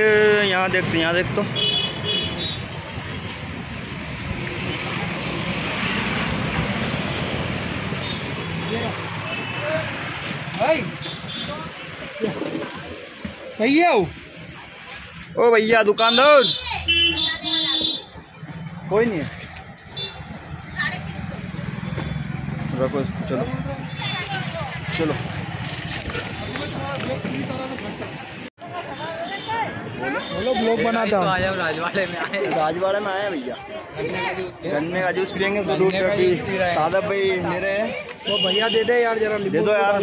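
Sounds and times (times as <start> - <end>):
traffic: 0.0 - 40.0.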